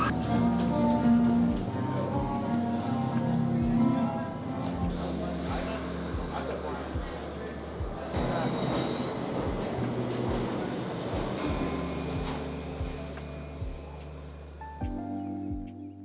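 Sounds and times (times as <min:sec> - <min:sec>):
subway train rumble: 0:00.0 - 0:14.9
background music with steady beat: 0:00.0 - 0:16.0
electric whine: 0:04.8 - 0:15.0.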